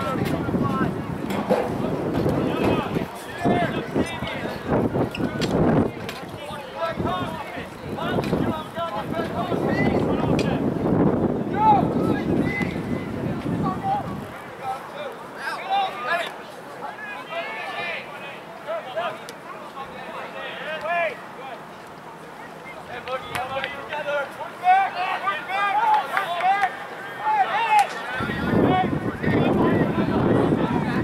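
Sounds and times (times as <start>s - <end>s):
wind rumble on microphone: 0.0s - 14.4s, 28.2s - 31.0s
distant voices shouting: 0.0s - 31.0s.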